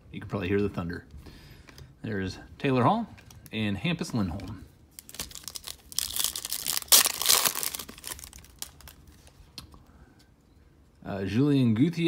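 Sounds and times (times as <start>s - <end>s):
foil wrapper tearing and crinkling: 5.0s - 9.2s.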